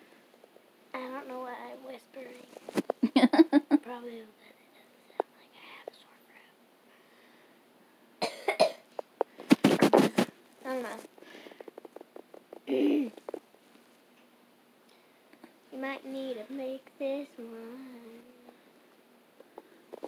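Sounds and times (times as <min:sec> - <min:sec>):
person coughing: 0:08.2 - 0:08.8, 0:12.7 - 0:13.2.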